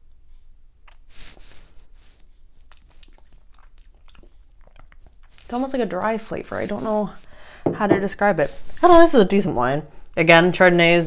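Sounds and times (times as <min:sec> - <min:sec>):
wet mouth clicks and lip smacks: 0:00.8 - 0:01.1, 0:02.6 - 0:05.5.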